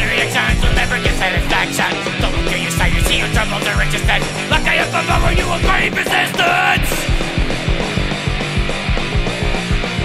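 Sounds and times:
bass guitar: 0.0s - 10.0s
distorted electric guitars: 0.0s - 10.0s
steady drum beat: 0.0s - 10.0s.

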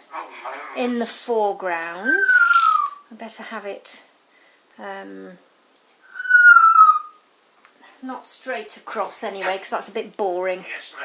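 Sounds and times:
parrot whistling: 2.0s - 3.0s, 6.0s - 7.2s.

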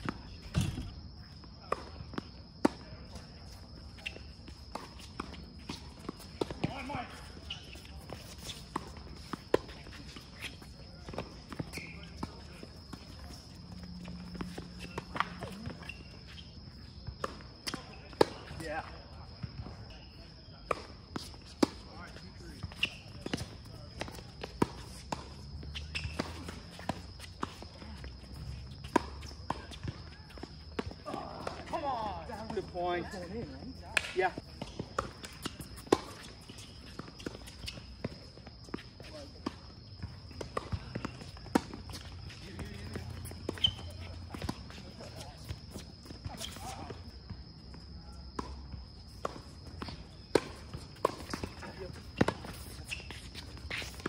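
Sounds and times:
players' footsteps: 0.0s - 18.6s, 21.1s - 54.0s
tennis balls struck by rackets: 22.7s - 32.7s, 33.9s - 54.0s.

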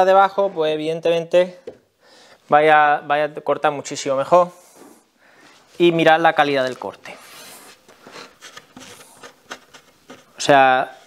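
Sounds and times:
hand rubbing wooden board: 4.6s - 11.0s.

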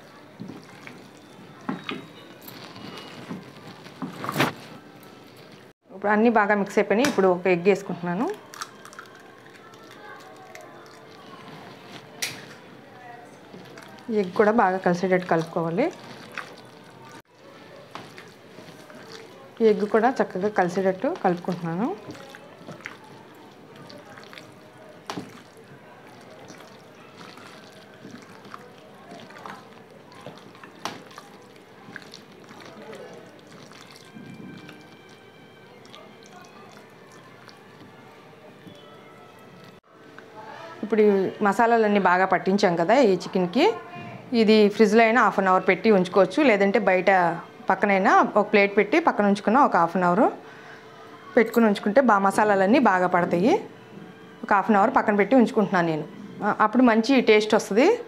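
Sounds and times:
hand squelching wet marinade: 0.0s - 4.0s, 13.4s - 39.8s.

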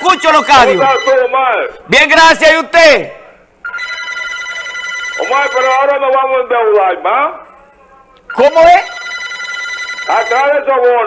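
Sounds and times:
high electronic telephone tone: 0.0s - 1.4s, 3.6s - 6.0s, 8.3s - 10.7s.

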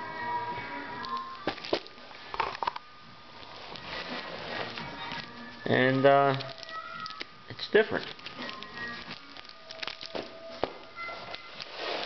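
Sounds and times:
background music: 0.0s - 12.0s
paper handbag crinkling: 3.4s - 12.0s.

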